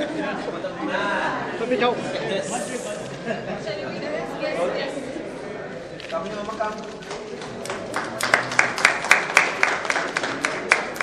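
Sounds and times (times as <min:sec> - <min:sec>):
people clapping: 0:06.3 - 0:11.0.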